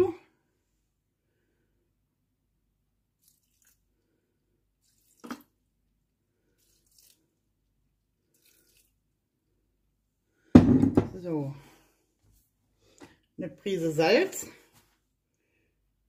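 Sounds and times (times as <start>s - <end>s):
liquid splashing into bowl: 3.2s - 3.8s, 4.8s - 5.6s, 6.6s - 7.2s, 8.3s - 9.0s.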